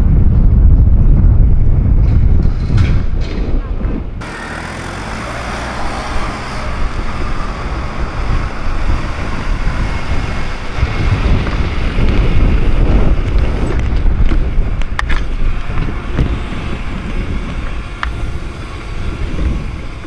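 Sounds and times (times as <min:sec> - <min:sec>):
wind buffeting microphone: 0:00.0 - 0:20.0
vehicles passing on road: 0:04.2 - 0:20.0.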